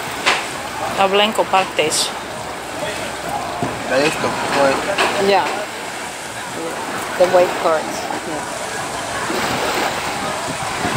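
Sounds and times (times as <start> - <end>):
faint voices: 0.0 - 10.9
surf: 0.0 - 10.9
wind: 0.0 - 10.9.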